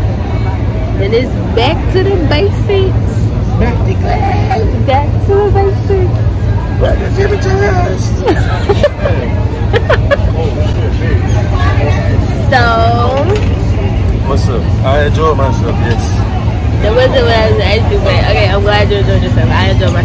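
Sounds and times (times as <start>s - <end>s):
steady low rumble: 0.0s - 20.0s
people talking: 1.0s - 13.5s, 14.1s - 20.0s
laughter: 8.2s - 10.6s.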